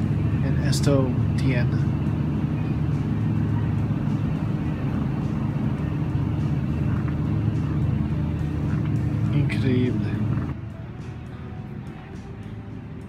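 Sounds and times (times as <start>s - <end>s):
low machinery hum: 0.0s - 13.0s.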